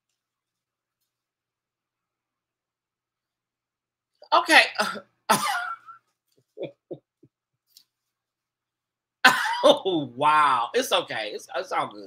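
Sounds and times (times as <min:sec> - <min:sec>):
man laughing: 0:05.3 - 0:06.0, 0:06.6 - 0:07.2, 0:09.3 - 0:09.8.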